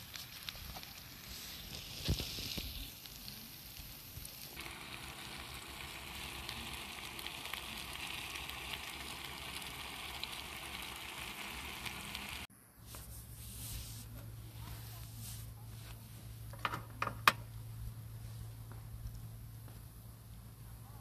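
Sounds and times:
food sizzling in a frying pan: 0:00.0 - 0:12.5.

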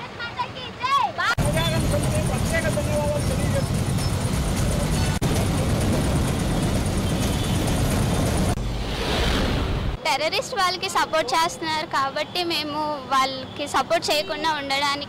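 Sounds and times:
short whoosh: 0:08.5 - 0:10.0.

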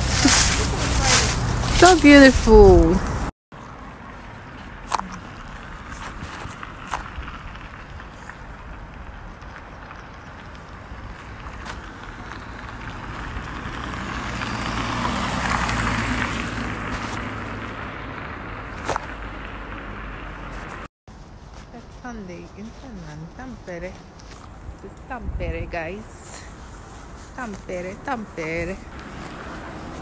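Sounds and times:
car passing: 0:00.0 - 0:20.9, 0:27.9 - 0:30.0
low traffic hum: 0:00.0 - 0:30.0.

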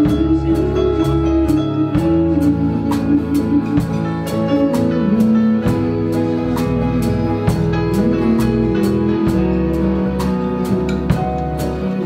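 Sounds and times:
accordion chords: 0:00.0 - 0:12.0
acoustic guitars strummed: 0:00.0 - 0:12.0.

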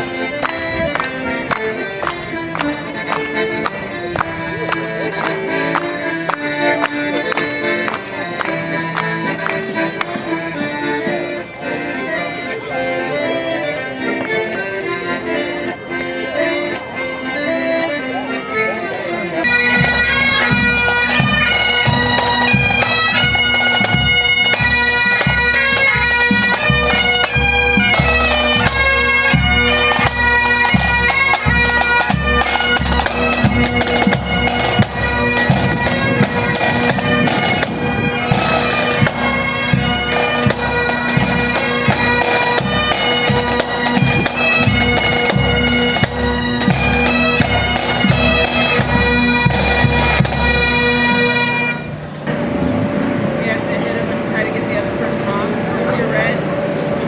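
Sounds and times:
bagpipes playing: 0:00.0 - 0:57.0
drums beating: 0:19.5 - 0:51.2.

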